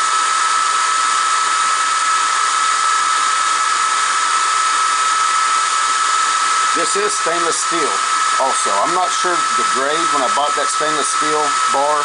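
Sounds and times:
laser engraver whine: 0.0 - 12.0
fans hissing: 4.2 - 12.0.

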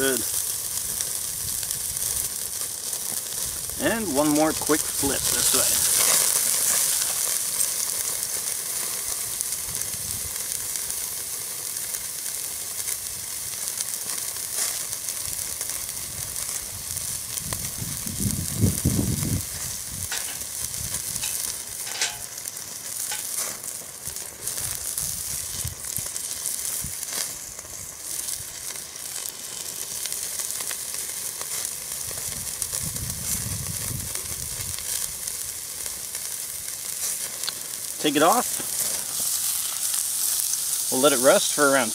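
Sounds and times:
steak sizzling on a grill: 0.0 - 41.9.

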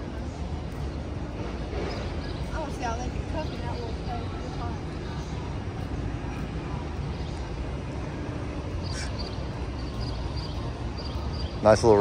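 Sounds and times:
city background rumble: 0.0 - 12.0.

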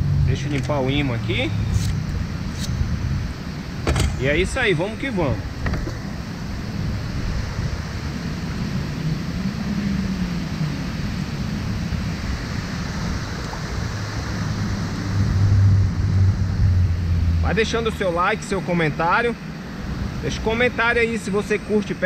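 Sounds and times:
deep rumble: 0.0 - 18.3
wind buffeting microphone: 0.0 - 22.0
water rushing over a weir: 12.1 - 16.0.

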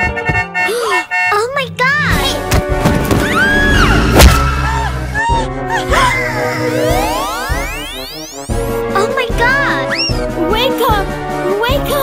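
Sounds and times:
background music: 0.0 - 12.0
cartoon rising glide effect: 3.2 - 8.4.

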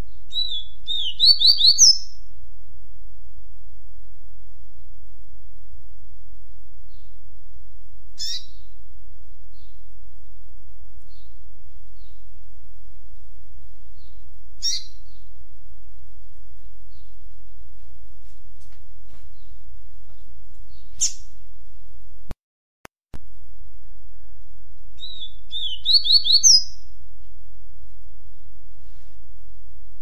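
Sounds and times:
steady low hum: 0.0 - 22.4, 23.2 - 30.0
sharp high bird chirp: 0.3 - 2.2, 8.2 - 8.6, 25.0 - 26.8.

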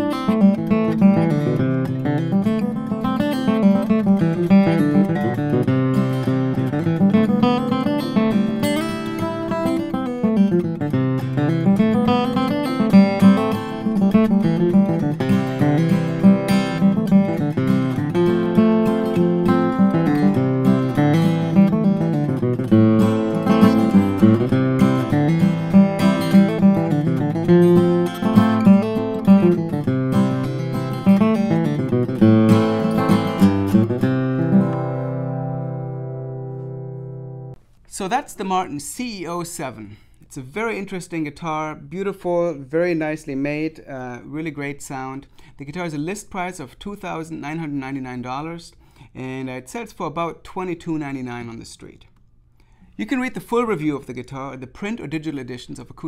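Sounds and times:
acoustic guitar flatpicked: 0.0 - 37.7.

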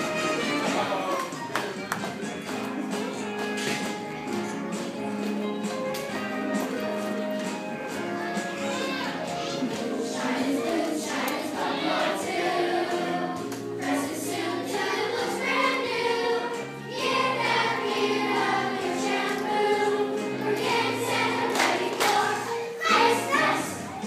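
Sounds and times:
instrumental accompaniment with bass: 0.0 - 1.6, 2.4 - 10.8
children singing: 8.7 - 24.0.

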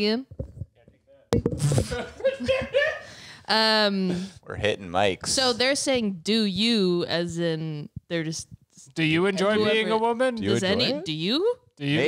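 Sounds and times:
people laughing: 1.8 - 3.2
voices: 9.2 - 12.0.

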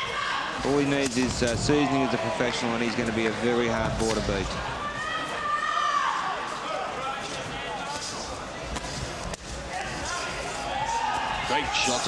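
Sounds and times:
people shouting: 0.0 - 0.9, 4.6 - 7.7, 9.7 - 12.0.

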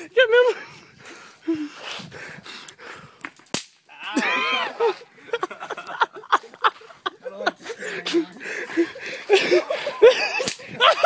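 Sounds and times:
bang snap crack: 3.2 - 3.9, 10.4 - 10.7.

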